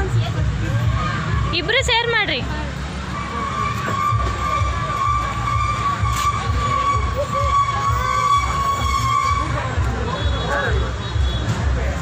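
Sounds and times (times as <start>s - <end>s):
low vehicle rumble: 0.0s - 10.3s.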